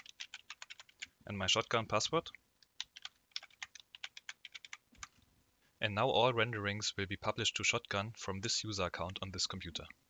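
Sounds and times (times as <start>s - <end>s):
typing on computer keyboard: 0.0s - 1.1s, 2.8s - 5.2s.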